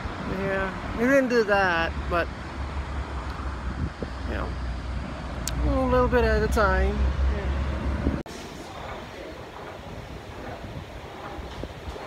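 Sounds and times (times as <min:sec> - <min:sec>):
train rumbling: 0:00.0 - 0:12.0
wind noise on microphone: 0:01.8 - 0:12.0.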